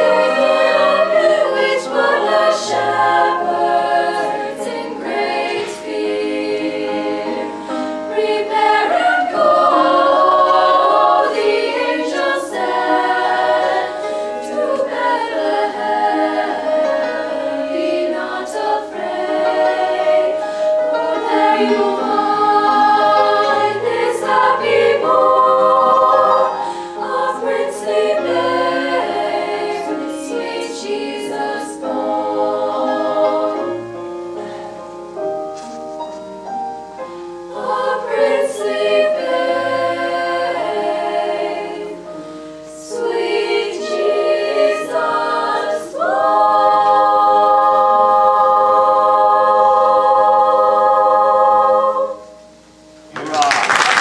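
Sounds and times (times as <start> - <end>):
girls' choir singing in harmony: 0.0 - 54.0.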